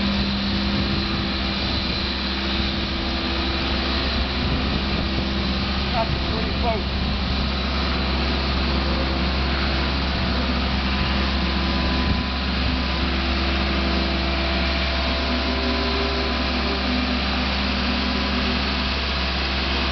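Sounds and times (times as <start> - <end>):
engine running steadily: 0.0 - 19.9.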